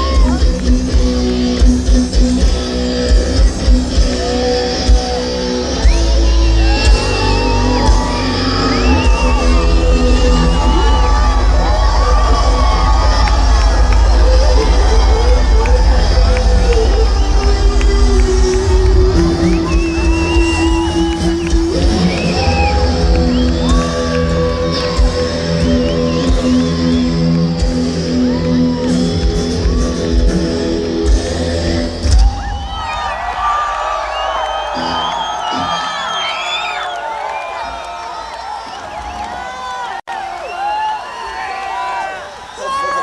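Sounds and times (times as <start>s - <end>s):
heavy metal band playing: 0.0s - 36.2s
crowd cheering and whistling: 0.0s - 43.0s.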